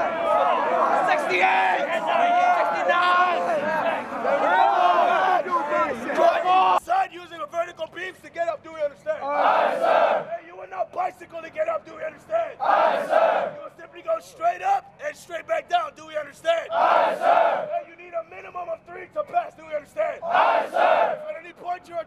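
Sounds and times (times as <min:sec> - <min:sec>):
group yelling in unison: 0:00.0 - 0:06.8, 0:09.2 - 0:10.3, 0:12.6 - 0:13.5, 0:16.7 - 0:17.8, 0:20.2 - 0:21.2
man shouting instructions: 0:00.0 - 0:12.7, 0:13.3 - 0:22.0.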